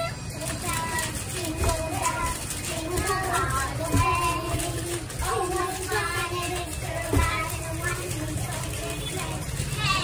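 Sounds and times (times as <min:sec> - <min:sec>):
girls talking and calling out: 0:05.2 - 0:10.0.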